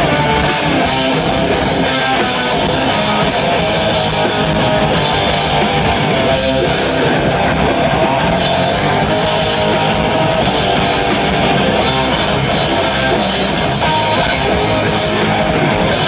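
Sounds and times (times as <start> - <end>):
distorted electric guitars: 0.0 - 16.0
drum kit: 0.0 - 16.0.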